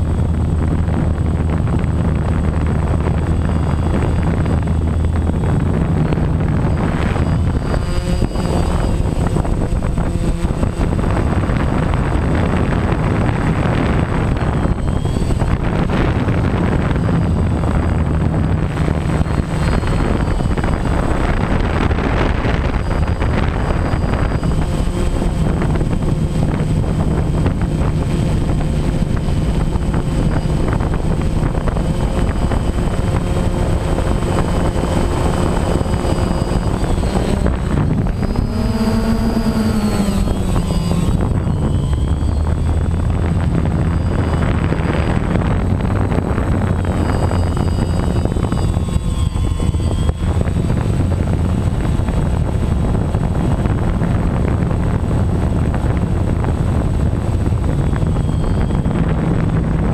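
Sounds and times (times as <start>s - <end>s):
drone motors and propellers: 0.0s - 59.9s
wind rushing over microphone: 0.0s - 59.9s.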